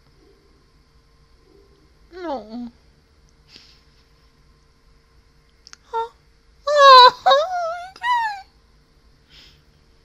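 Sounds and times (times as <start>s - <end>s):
woman squealing: 6.7s - 8.5s.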